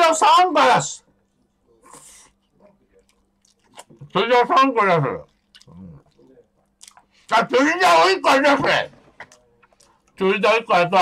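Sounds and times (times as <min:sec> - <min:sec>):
faint steady hum: 0:00.0 - 0:11.0
faint eating sounds: 0:01.0 - 0:11.0
breathy nose noise: 0:01.8 - 0:02.4.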